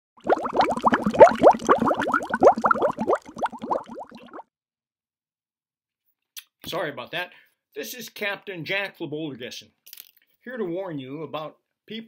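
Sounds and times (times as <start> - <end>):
cartoon underwater bubbling: 0.2 - 4.5.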